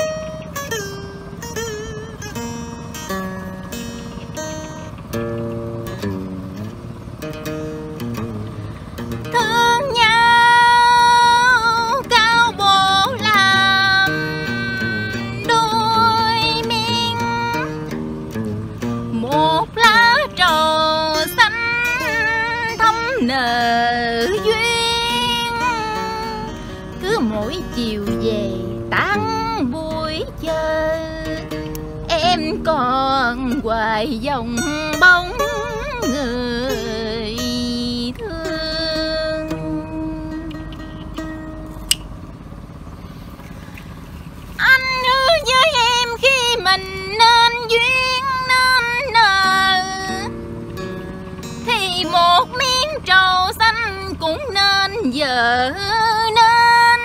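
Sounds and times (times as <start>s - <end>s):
woman singing long wavering notes: 0.0s - 5.1s, 8.0s - 41.6s, 42.3s - 57.0s
plucked acoustic guitar: 0.0s - 57.0s
sharp click: 41.8s - 42.1s.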